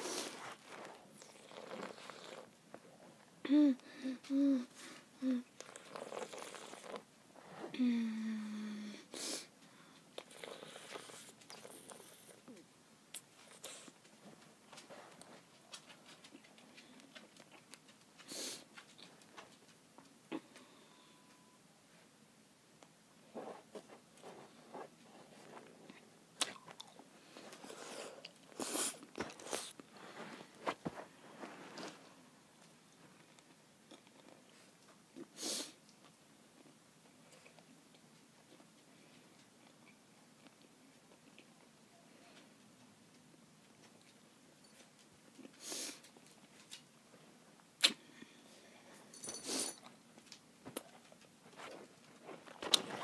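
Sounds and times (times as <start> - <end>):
person chewing candy: 0.0 - 2.6, 5.5 - 7.0, 25.9 - 29.8
girl breathing: 3.4 - 5.5, 7.6 - 10.1
girl humming: 3.4 - 5.5, 7.7 - 9.2
girl moaning: 3.4 - 5.5, 7.7 - 9.1.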